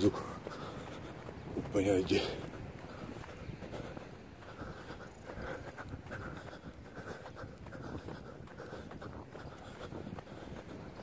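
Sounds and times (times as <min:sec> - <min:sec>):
footfalls on sand: 0:00.0 - 0:05.0
heavy breathing: 0:00.0 - 0:11.0.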